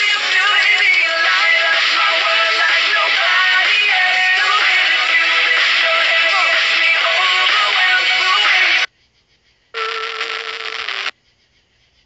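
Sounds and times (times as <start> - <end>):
music from radio: 0.0 - 8.9, 9.8 - 11.1.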